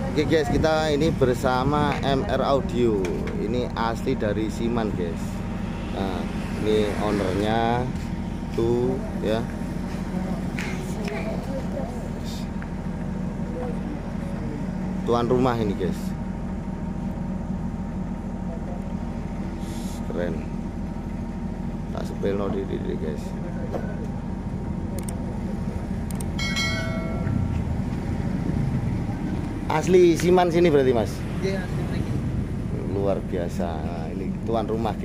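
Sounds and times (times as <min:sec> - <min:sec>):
engine idling: 0:00.0 - 0:35.0
steady low rumble: 0:00.0 - 0:35.0
bell-like metallic ring: 0:26.4 - 0:27.6.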